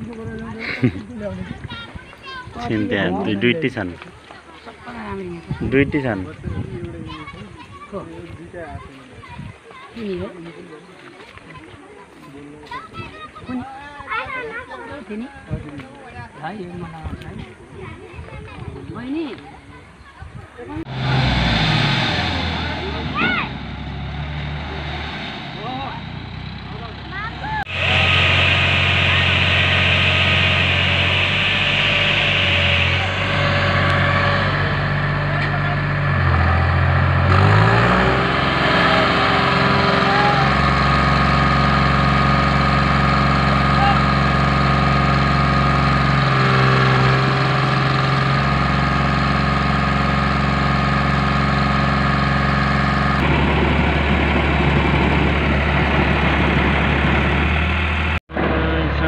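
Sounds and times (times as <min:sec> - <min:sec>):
people talking: 0:00.0 - 0:20.9, 0:22.1 - 0:23.6, 0:24.7 - 0:36.4, 0:37.3 - 0:48.5, 0:58.4 - 0:59.0
tractor engine revving: 0:20.8 - 0:59.0.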